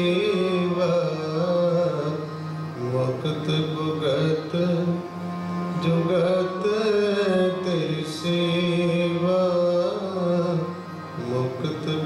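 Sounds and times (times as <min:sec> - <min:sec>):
man singing a hymn: 0:00.0 - 0:05.0, 0:05.8 - 0:12.0
harmonium chords: 0:00.0 - 0:12.0.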